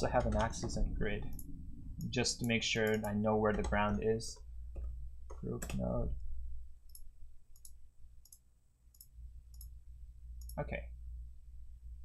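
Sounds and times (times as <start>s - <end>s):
low electrical hum: 0.0s - 12.0s
computer mouse clicking: 0.2s - 4.0s, 6.9s - 9.8s.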